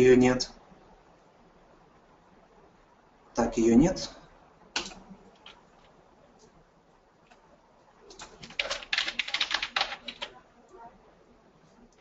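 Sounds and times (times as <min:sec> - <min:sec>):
typing on computer keyboard: 0:04.8 - 0:06.0, 0:08.1 - 0:10.4.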